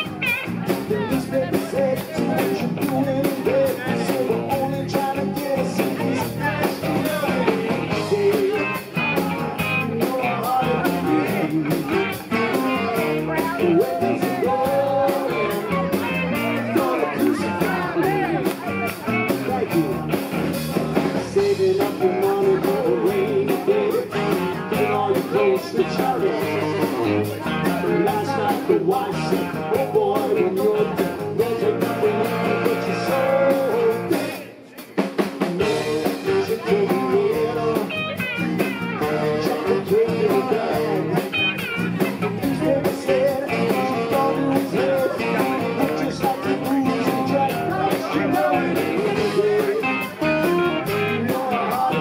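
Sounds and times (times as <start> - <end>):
electric guitars: 0.0 - 34.6, 35.4 - 52.0
bass guitar: 0.0 - 52.0
drums: 0.0 - 52.0.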